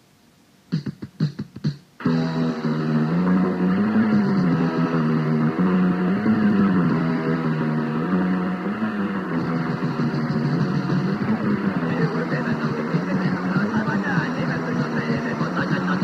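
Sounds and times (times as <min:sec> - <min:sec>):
distorted electric guitar riff: 0:02.0 - 0:16.0.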